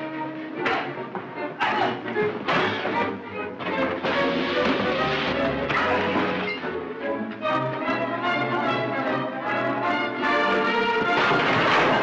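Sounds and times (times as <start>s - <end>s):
dramatic orchestral music: 0.0s - 12.0s.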